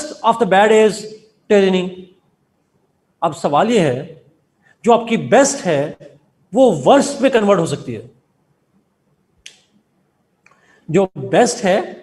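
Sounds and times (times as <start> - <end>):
man speaking: 0.0 - 2.1, 3.2 - 8.2, 10.9 - 12.0.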